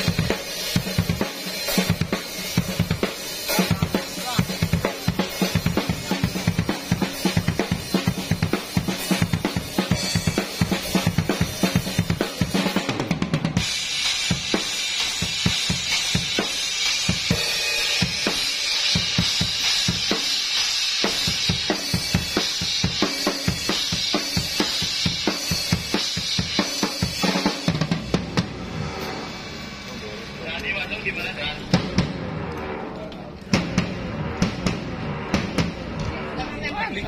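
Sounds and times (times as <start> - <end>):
bass drum and snare beat: 0.0 - 29.2, 33.5 - 36.2
cymbal wash: 0.0 - 36.3.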